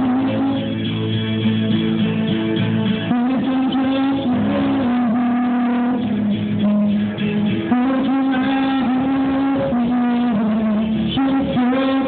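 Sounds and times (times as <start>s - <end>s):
man singing karaoke into microphone: 0.0s - 0.9s, 3.0s - 12.0s
backing track music: 0.0s - 12.0s.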